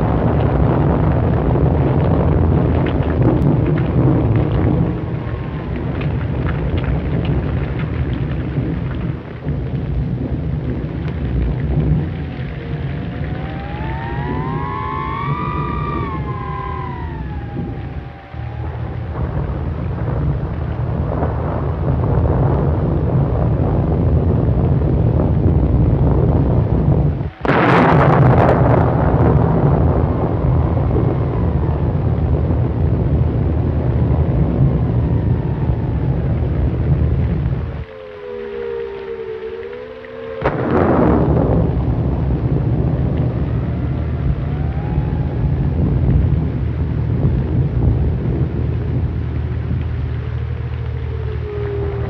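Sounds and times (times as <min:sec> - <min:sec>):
loud thunderclap: 0:00.0 - 0:38.9, 0:40.3 - 0:52.0
heavy film hiss: 0:00.0 - 0:52.0
steady rain: 0:00.0 - 0:52.0
thunder rumbling: 0:00.0 - 0:52.0
wailing tone: 0:02.7 - 0:07.9, 0:11.8 - 0:25.1, 0:26.6 - 0:52.0.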